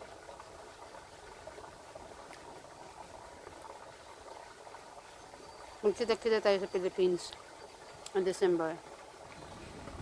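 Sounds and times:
crackly outdoor ambience: 0:00.0 - 0:10.0.

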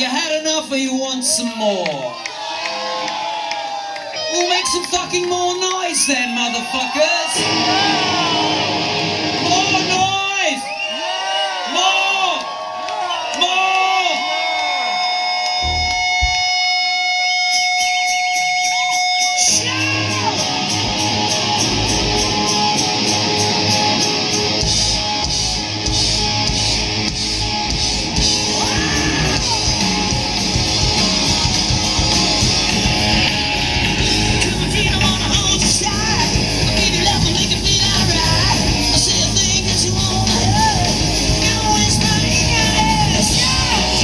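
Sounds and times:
crowd shouting: 0:02.0 - 0:16.0, 0:18.6 - 0:39.1, 0:39.8 - 0:44.0
hard rock band playing: 0:04.5 - 0:12.1, 0:14.8 - 0:44.0.

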